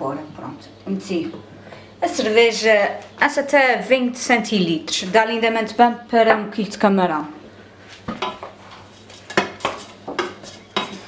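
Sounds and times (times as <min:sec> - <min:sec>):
wooden spoon knocking on steel pot: 0:08.1 - 0:08.5, 0:09.3 - 0:11.0.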